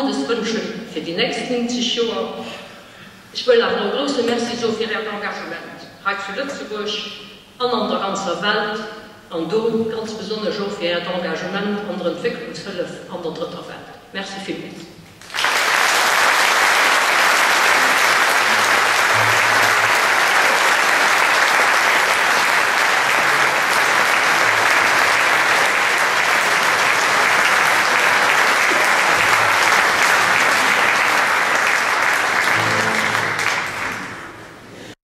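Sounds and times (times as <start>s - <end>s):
audience applauding: 15.2s - 34.7s.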